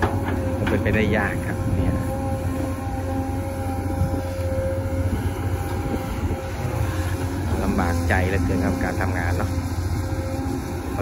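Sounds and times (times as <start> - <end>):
excavator engine rumbling: 0.0 - 11.0
hydraulic whine: 0.0 - 11.0.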